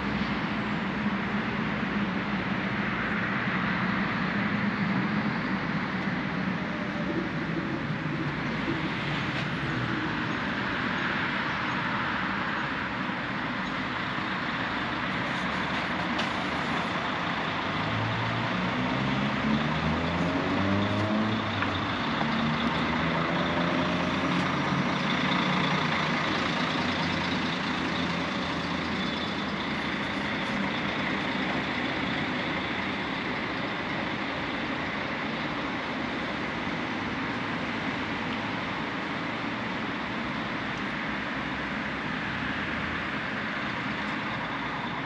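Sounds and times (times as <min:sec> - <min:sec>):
bus engine accelerating: 0:00.0 - 0:45.0
city traffic noise: 0:00.0 - 0:45.0.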